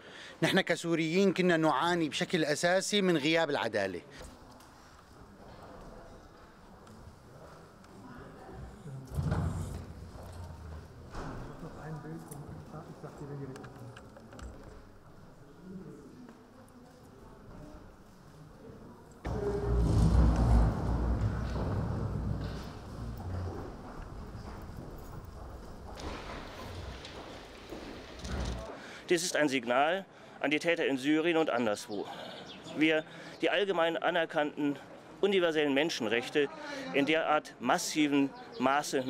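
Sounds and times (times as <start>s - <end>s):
footsteps and shuffling: 4.2s - 14.0s, 19.2s - 28.8s
room noise: 4.2s - 17.4s, 18.1s - 28.8s
murmuring voices: 19.1s - 24.4s.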